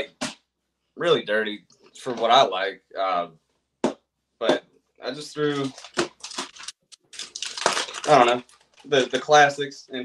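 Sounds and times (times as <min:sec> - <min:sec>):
plastic bag crinkling: 0:05.4 - 0:09.6.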